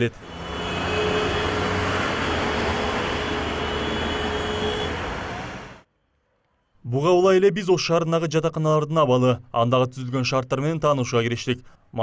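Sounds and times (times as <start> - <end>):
passing cars and buses: 0.0 - 5.9.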